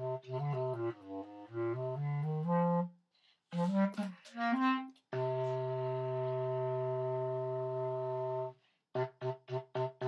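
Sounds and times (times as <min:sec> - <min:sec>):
bass clarinet long low note: 0:00.0 - 0:02.9, 0:03.6 - 0:10.0.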